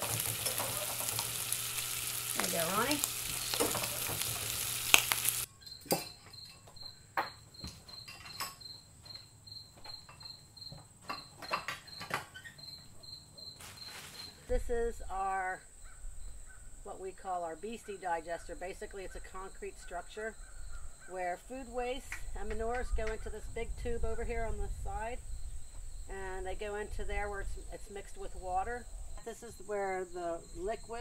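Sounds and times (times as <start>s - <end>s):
food sizzling in frying pans: 0.0s - 5.5s
high insect chirp: 0.0s - 31.0s.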